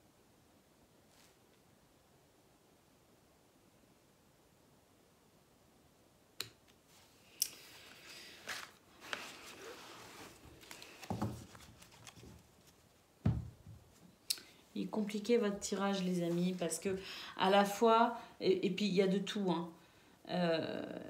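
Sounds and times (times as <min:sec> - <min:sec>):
cards thumping on cloth table: 0:10.9 - 0:12.2, 0:13.2 - 0:13.8.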